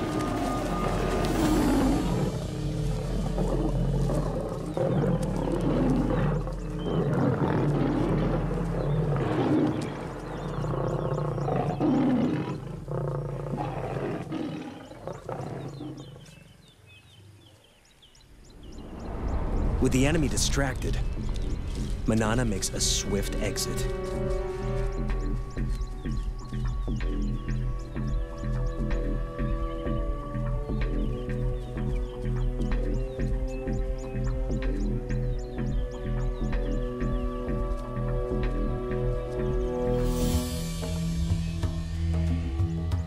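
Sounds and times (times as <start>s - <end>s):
lions growling and snarling: 0.0s - 16.7s
steady background music: 19.6s - 43.0s.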